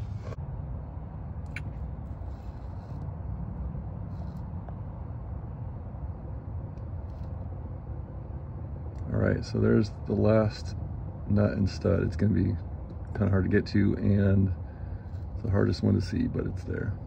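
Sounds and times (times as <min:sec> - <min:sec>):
low rumble of background noise: 0:00.0 - 0:17.0.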